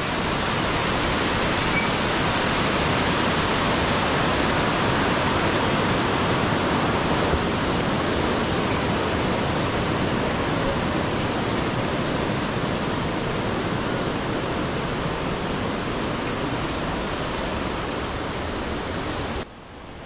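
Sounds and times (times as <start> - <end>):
stream rushing over rocks: 0.0 - 19.4.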